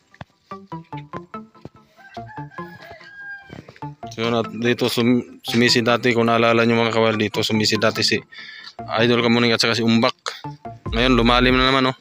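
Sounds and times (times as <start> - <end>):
background music of short notes: 0.4 - 12.0
rooster crowing: 1.9 - 3.9.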